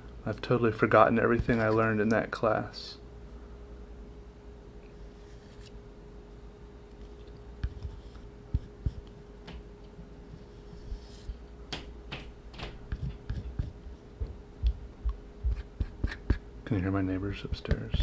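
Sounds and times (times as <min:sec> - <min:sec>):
faint hum: 0:00.0 - 0:18.0.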